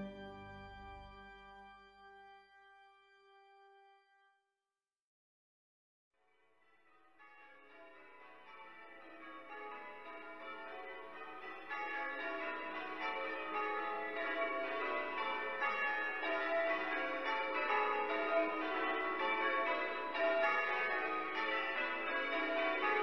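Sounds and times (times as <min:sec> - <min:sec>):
church bells ringing: 0:00.0 - 0:02.2, 0:07.0 - 0:23.0.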